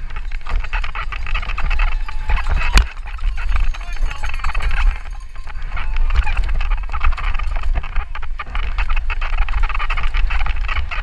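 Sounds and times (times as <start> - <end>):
mountain bike rattling over rocks: 0.0 - 11.0
wind buffeting microphone: 0.0 - 11.0.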